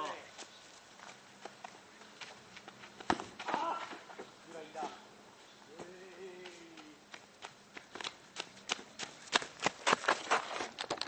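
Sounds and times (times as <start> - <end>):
running footsteps on gravel: 5.7 - 11.0.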